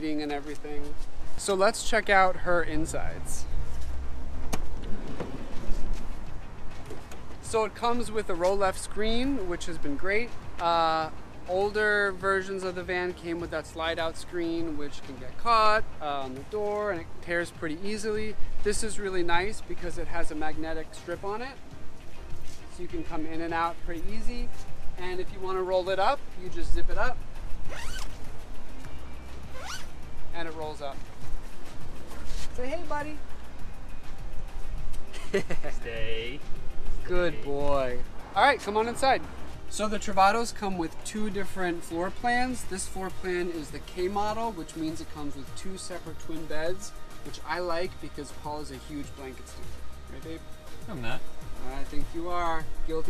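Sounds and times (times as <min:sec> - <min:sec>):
zipper being zipped up: 0:27.6 - 0:28.3, 0:29.5 - 0:30.0.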